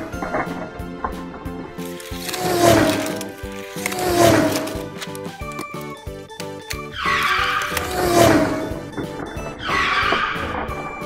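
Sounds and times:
background music: 0:00.0 - 0:11.0
car tire screech: 0:07.0 - 0:08.8, 0:09.6 - 0:10.6.

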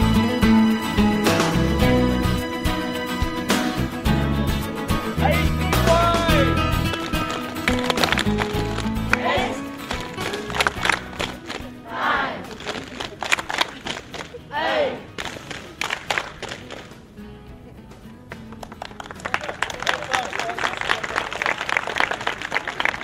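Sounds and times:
music: 0:00.0 - 0:23.0
people clapping: 0:05.9 - 0:11.8, 0:12.4 - 0:14.4, 0:15.1 - 0:17.0, 0:18.2 - 0:23.0
voices shouting: 0:09.1 - 0:09.7, 0:11.8 - 0:12.5, 0:14.5 - 0:15.1.

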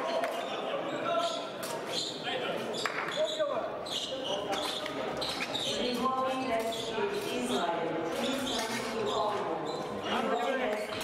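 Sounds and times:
background chatter in large hall: 0:00.0 - 0:11.0.

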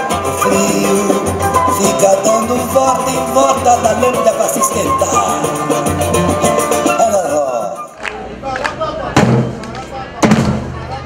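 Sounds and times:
bass and snare drum hits: 0:09.2 - 0:09.6, 0:10.2 - 0:10.7.

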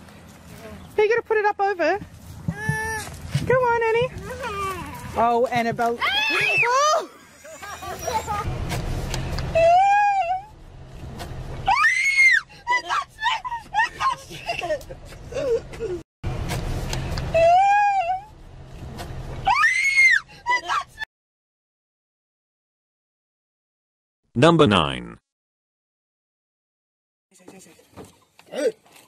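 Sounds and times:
low vehicle rumble: 0:00.0 - 0:21.0
laughter: 0:07.3 - 0:08.5, 0:13.5 - 0:16.0.

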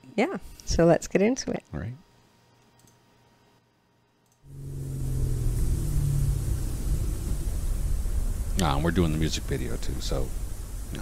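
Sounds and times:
car engine and road noise: 0:04.5 - 0:10.8.

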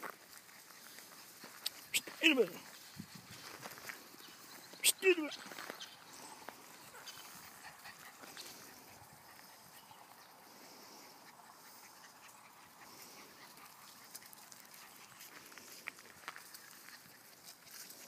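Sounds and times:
puppies moving on grass and gravel: 0:00.0 - 0:18.0.

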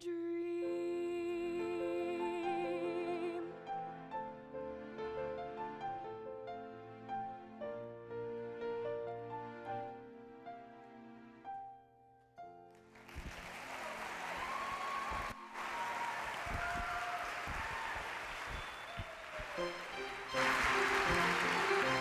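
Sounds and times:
audience applauding: 0:12.8 - 0:22.0.

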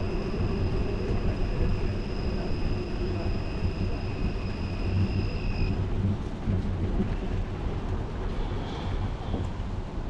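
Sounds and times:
outdoor city ambience: 0:00.0 - 0:10.0
wind rumble on microphone: 0:00.0 - 0:10.0.

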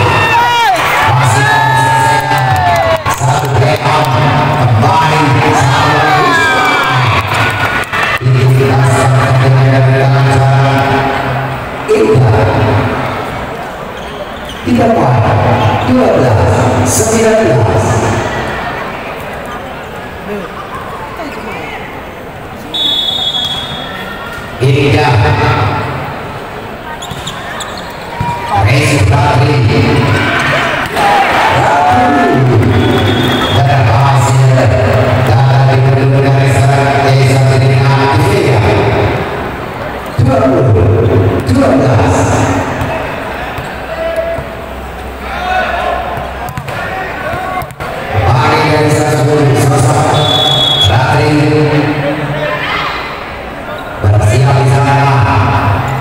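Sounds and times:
crowd chatter: 0:00.0 - 0:56.0
referee's whistle blast: 0:22.7 - 0:24.1, 0:32.6 - 0:33.7, 0:50.0 - 0:51.0.

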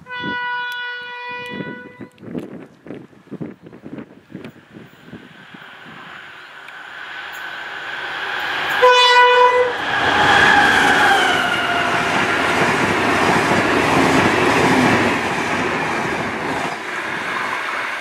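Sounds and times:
train horn: 0:00.0 - 0:02.1, 0:08.7 - 0:12.0
train passing engine and wheels: 0:00.0 - 0:18.0.

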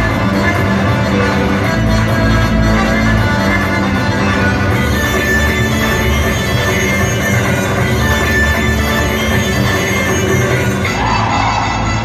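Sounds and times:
folk dance music: 0:00.0 - 0:12.0.

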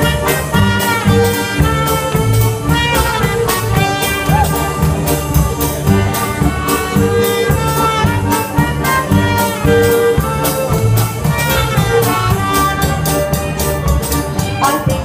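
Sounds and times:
brass horns holding notes: 0:00.0 - 0:15.0
live band playing instrumental: 0:00.0 - 0:15.0.

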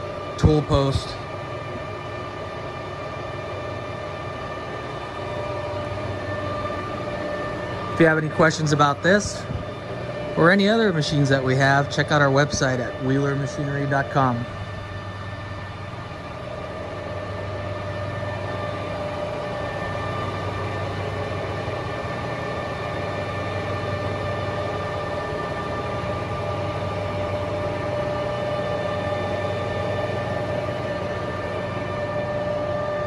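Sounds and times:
drive whine: 0:00.0 - 0:33.0
lathe mechanical hum: 0:00.0 - 0:33.0.

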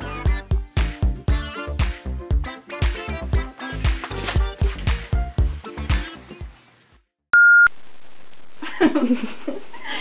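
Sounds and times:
short electronic beep: 0:07.4 - 0:07.7
person laughing: 0:08.6 - 0:10.0.

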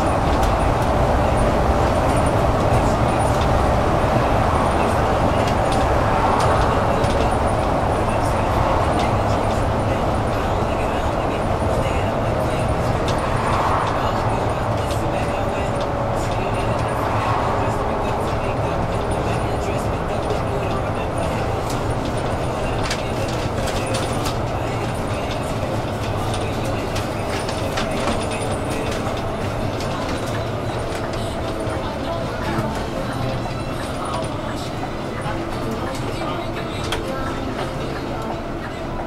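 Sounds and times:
bus fittings clicking and rattling: 0:00.0 - 0:17.0, 0:18.0 - 0:38.8
bus engine hum: 0:00.0 - 0:39.0
road noise: 0:00.0 - 0:39.0.

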